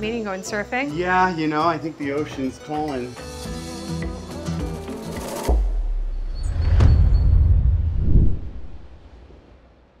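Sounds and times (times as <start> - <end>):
deep cinematic boom: 5.6 - 9.2.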